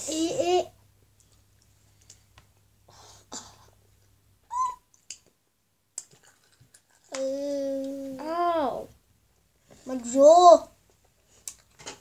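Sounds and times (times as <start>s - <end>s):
girl's high-pitched ooh call: 4.5s - 4.8s.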